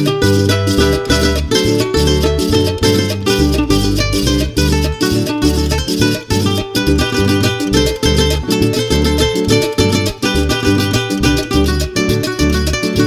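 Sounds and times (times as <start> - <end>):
plucked string instruments: 0.0 - 13.0
repeating bass beat: 0.0 - 13.0.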